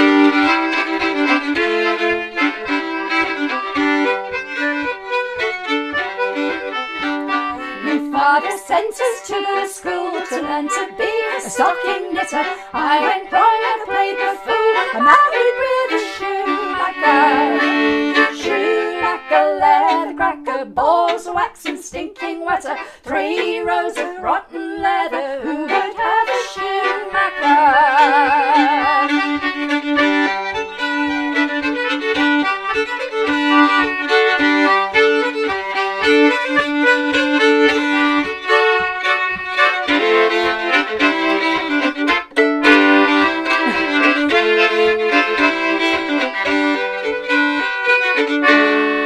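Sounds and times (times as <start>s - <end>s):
concertina playing: 0.0s - 49.0s
fiddle playing: 0.0s - 49.0s.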